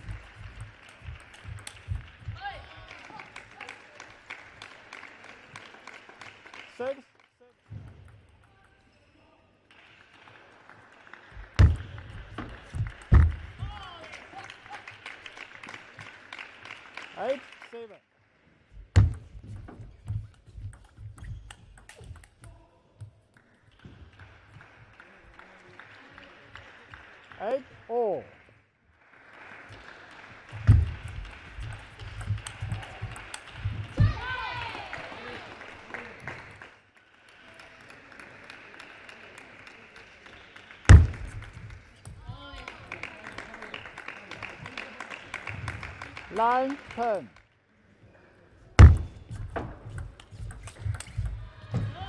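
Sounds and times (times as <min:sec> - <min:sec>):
loud thump: 0:13.1 - 0:13.6, 0:19.0 - 0:19.3, 0:40.9 - 0:41.4, 0:48.8 - 0:49.7
table tennis ball clicks: 0:20.1 - 0:22.6
low thuds: 0:40.9 - 0:41.5.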